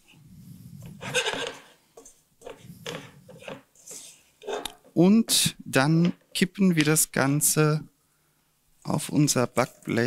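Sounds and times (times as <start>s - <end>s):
wooden spoon scraping a pan: 0.8s - 5.0s.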